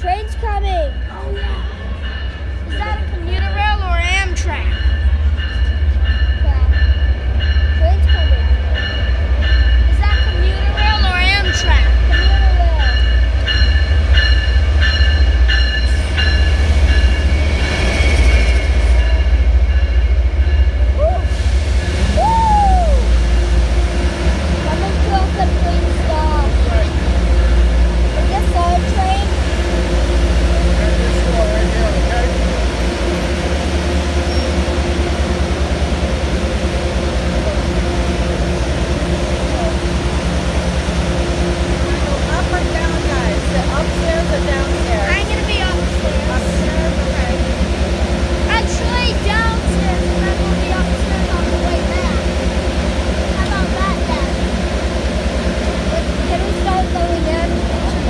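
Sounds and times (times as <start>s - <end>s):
train rumbling at platform: 0.0s - 58.0s.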